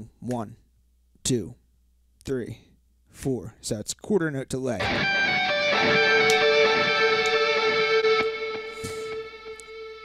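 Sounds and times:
electric guitar note with delay: 0:04.8 - 0:10.0.

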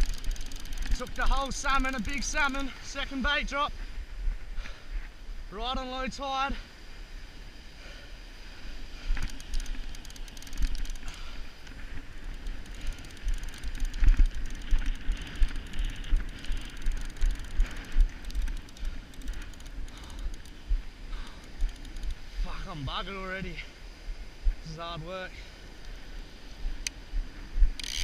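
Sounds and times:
fishing reel ratchet clicking: 0:00.0 - 0:02.7, 0:09.1 - 0:20.6, 0:21.2 - 0:22.2, 0:27.7 - 0:28.0.

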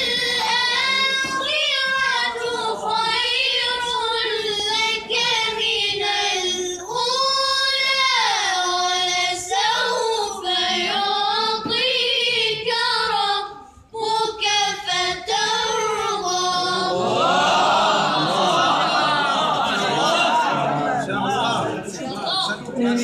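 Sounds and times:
child reciting melodically: 0:00.0 - 0:17.3.

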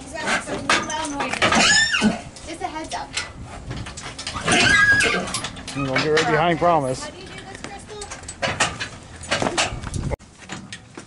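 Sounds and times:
horse vocalizing: 0:04.3 - 0:05.5.

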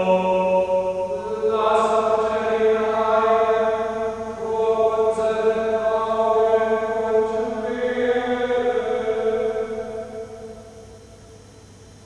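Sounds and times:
voices chanting in church: 0:00.0 - 0:11.8.

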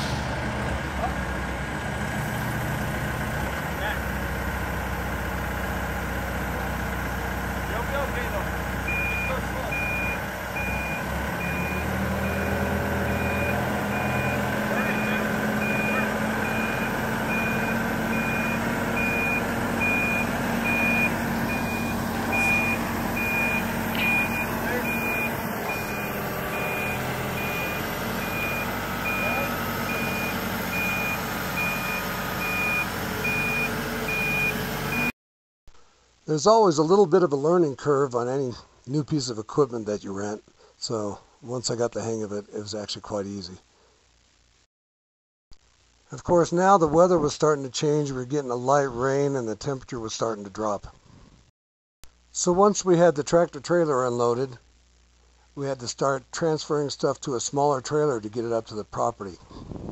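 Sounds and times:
telehandler engine under load: 0:00.0 - 0:35.1
backup alarm beeping: 0:08.9 - 0:35.1.

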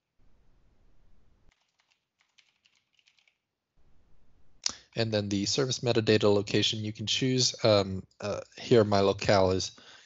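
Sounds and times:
faint keyboard typing: 0:01.5 - 0:03.5.

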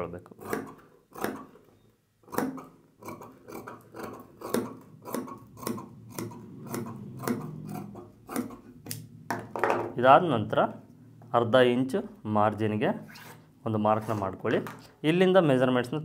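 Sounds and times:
scissors snipping fabric: 0:00.4 - 0:01.6, 0:02.2 - 0:09.0.

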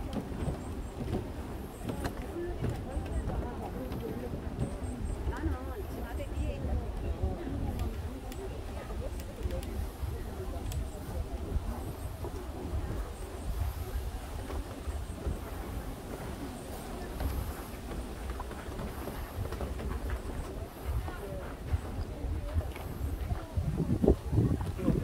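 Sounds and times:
background chatter of visitors: 0:00.0 - 0:25.0
footsteps: 0:00.0 - 0:25.0
low microphone rumble: 0:00.0 - 0:25.0.

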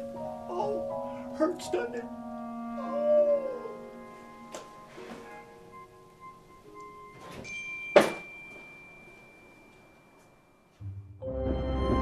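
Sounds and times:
quiet background music: 0:00.0 - 0:12.0
door slamming shut: 0:07.2 - 0:08.3.

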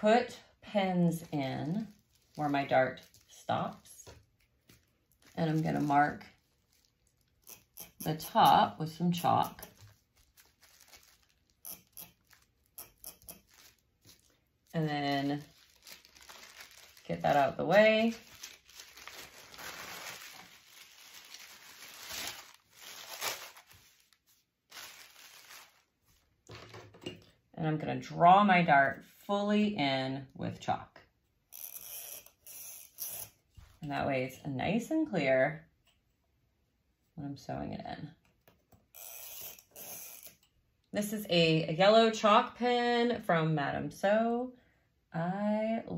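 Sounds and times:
tissue paper rustling and crinkling: 0:01.2 - 0:07.4, 0:09.7 - 0:12.8, 0:13.4 - 0:26.4
soft fabric handling: 0:09.6 - 0:11.6, 0:13.4 - 0:26.7.

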